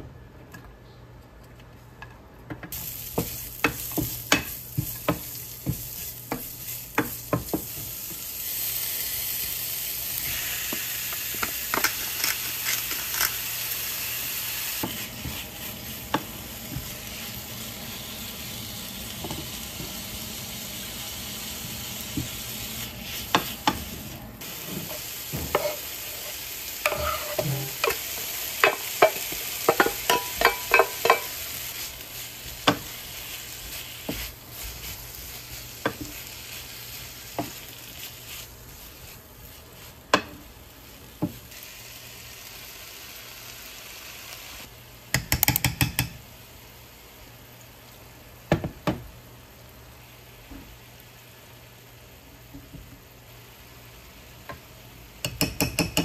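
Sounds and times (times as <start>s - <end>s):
food sizzling in oil: 2.7s - 44.8s
spatula knocking against pan: 55.2s - 56.0s.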